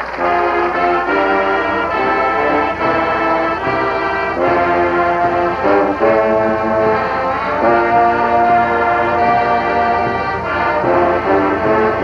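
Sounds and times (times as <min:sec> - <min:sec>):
brass band slow chords: 0:00.0 - 0:12.0.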